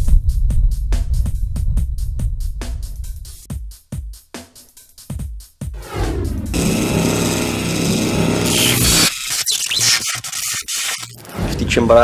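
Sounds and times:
held synth chord: 6.5 - 9.1
glitchy clicks: 6.6 - 11.6.

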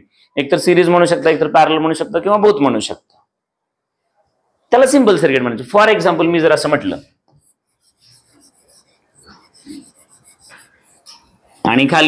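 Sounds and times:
stylus rubbing and tapping: 7.2 - 11.7.

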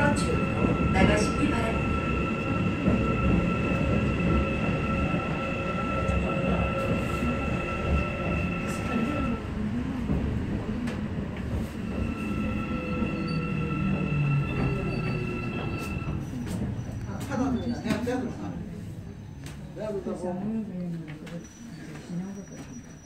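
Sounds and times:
train wheels rumbling on rail: 0.0 - 18.1.

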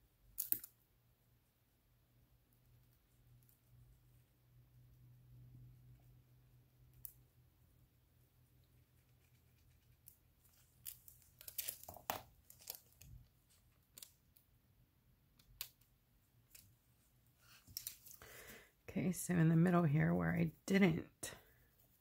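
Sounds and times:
nail foil crinkling: 10.4 - 14.2, 17.7 - 18.3.

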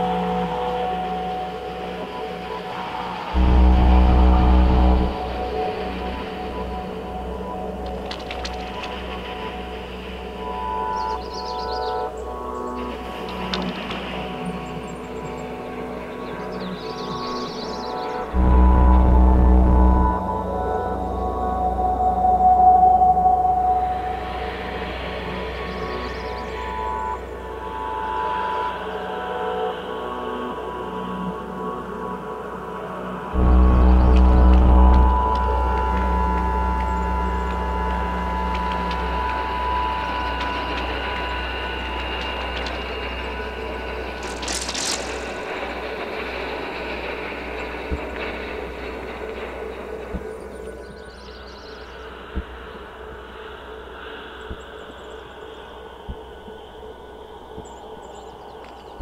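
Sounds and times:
deep bass drone: 0.0 - 13.8, 18.2 - 29.4, 33.0 - 52.6
synthesizer drone music: 0.0 - 54.2.

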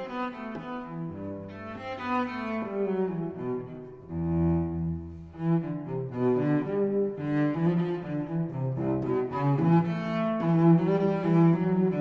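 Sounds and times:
bowed cello melody: 0.0 - 12.0.

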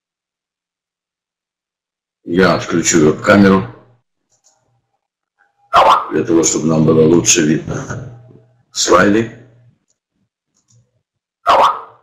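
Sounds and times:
bark-like animal call: 5.7 - 6.2, 11.4 - 12.0.

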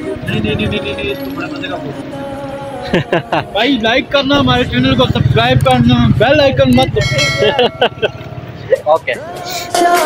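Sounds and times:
street traffic: 0.0 - 10.0
vehicle engine humming: 0.0 - 10.0
voices: 0.0 - 10.0.

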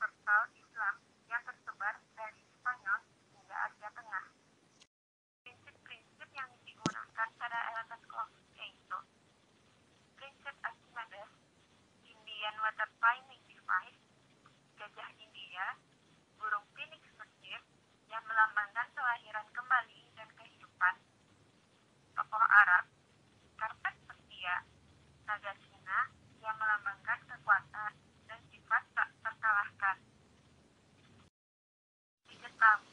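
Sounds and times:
person talking over telephone: 0.0 - 4.3, 5.5 - 9.1, 10.2 - 11.3, 12.0 - 14.0, 14.8 - 15.8, 16.4 - 21.0, 22.2 - 22.9, 23.6 - 24.7, 25.3 - 30.0, 32.3 - 32.9.

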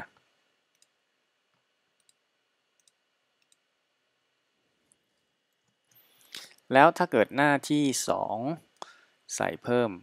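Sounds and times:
computer mouse clicks: 0.7 - 1.0, 2.0 - 2.2, 2.8 - 3.7.

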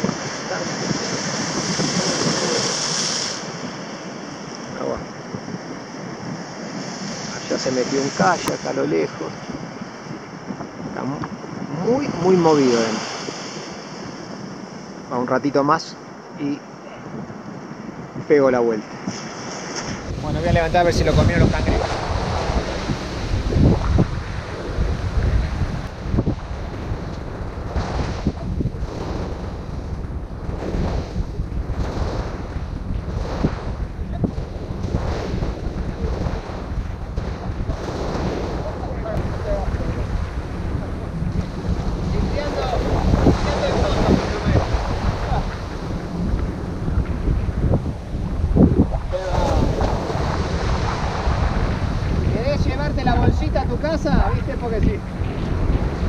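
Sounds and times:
surf washing up sand beach: 0.0 - 56.0
wind buffeting microphone: 0.0 - 56.0.

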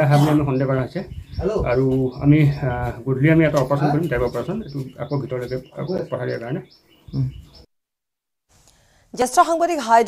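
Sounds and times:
man speaking: 0.0 - 7.4.

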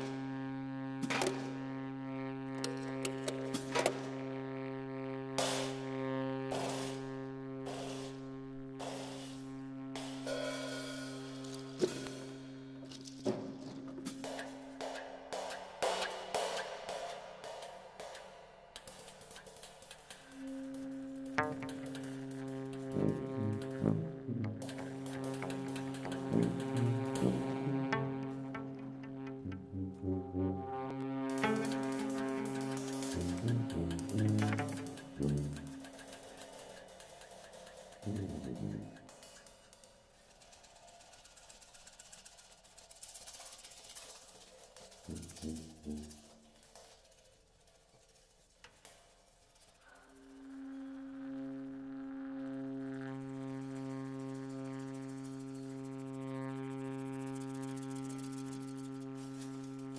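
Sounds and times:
tenor saxophone: 0.0 - 16.0, 18.8 - 39.8, 45.0 - 47.1, 49.8 - 59.9
tuba: 0.0 - 17.0, 18.8 - 39.6, 43.8 - 47.1, 49.9 - 59.9
drum and cymbal strikes: 5.4 - 24.0, 24.6 - 27.6, 31.3 - 42.2
sustained low note: 20.3 - 36.1, 38.0 - 39.1, 50.3 - 57.5
shorter low notes: 20.4 - 36.2, 38.0 - 39.1
bowed cello: 20.4 - 36.3, 38.0 - 39.1.

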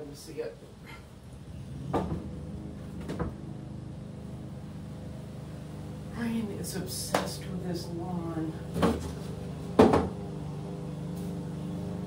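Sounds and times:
lawn mower engine running: 1.3 - 12.0.

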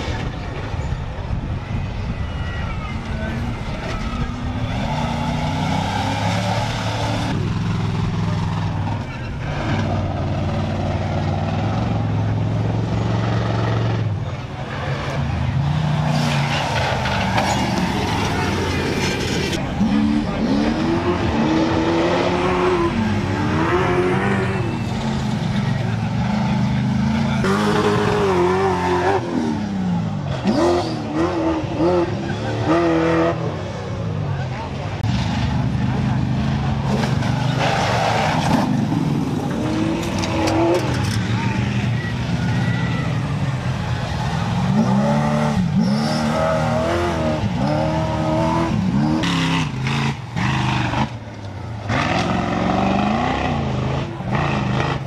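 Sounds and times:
race truck engines revving: 0.0 - 55.0.

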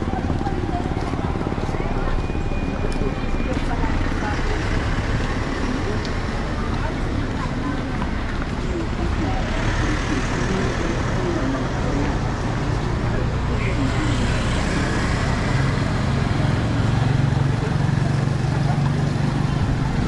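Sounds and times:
traffic noise: 0.0 - 20.0
voices of passersby: 0.0 - 20.0.

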